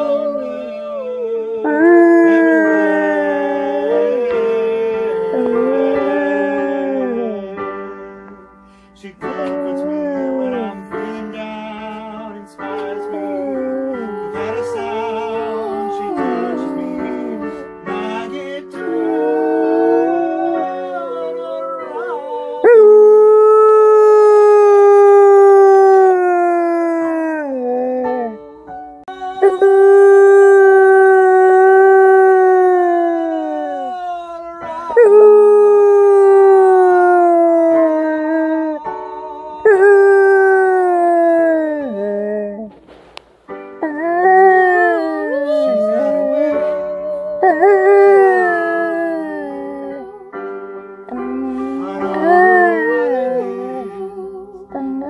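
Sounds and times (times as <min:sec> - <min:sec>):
dog howling: 0:00.0 - 0:07.8, 0:09.4 - 0:11.0, 0:12.6 - 0:17.7, 0:18.8 - 0:28.4, 0:29.1 - 0:42.7, 0:43.8 - 0:50.3, 0:51.1 - 0:55.0
piano music: 0:00.0 - 0:55.0.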